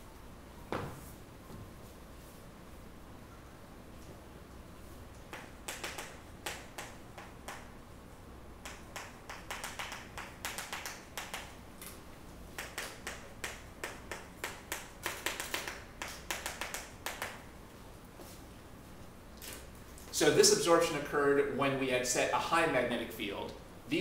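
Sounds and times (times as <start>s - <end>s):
chalk tapping and scraping on blackboard: 5.3s - 7.7s, 8.6s - 11.6s, 12.6s - 17.4s.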